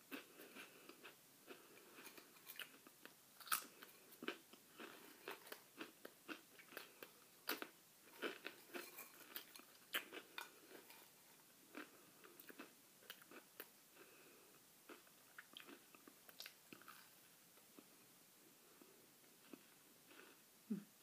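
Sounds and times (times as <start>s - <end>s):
person chewing crackers: 0.1s - 18.0s.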